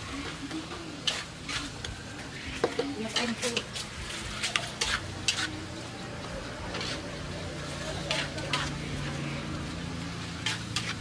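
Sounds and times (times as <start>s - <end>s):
fish sizzling in a wok: 0.0s - 11.0s
metal spatula scraping a wok: 0.0s - 11.0s.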